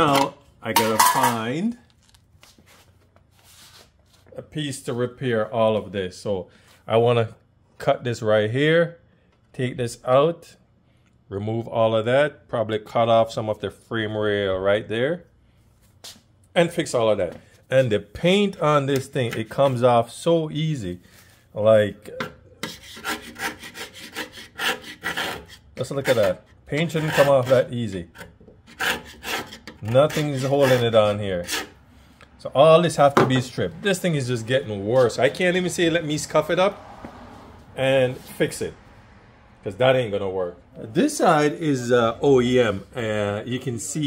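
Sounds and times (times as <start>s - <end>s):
scraper blade scraping paint off metal: 22.6s - 31.8s.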